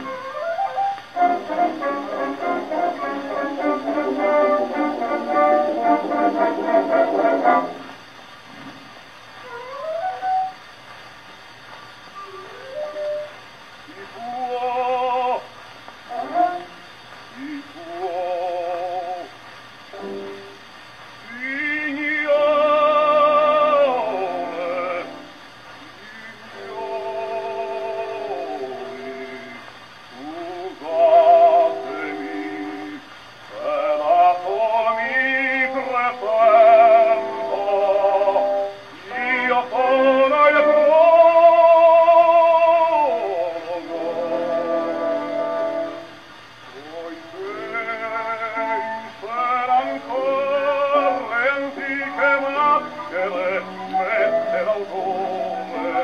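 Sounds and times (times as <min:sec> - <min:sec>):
orchestra: 0:00.0 - 0:08.0, 0:16.1 - 0:19.3, 0:19.9 - 0:20.6, 0:21.2 - 0:56.0
opera record on gramophone: 0:00.0 - 0:56.0
record surface hiss: 0:00.0 - 0:56.0.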